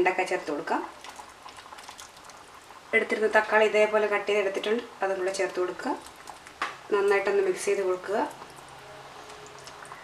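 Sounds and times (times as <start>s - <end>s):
gravy bubbling with light ticks: 0.0s - 10.0s.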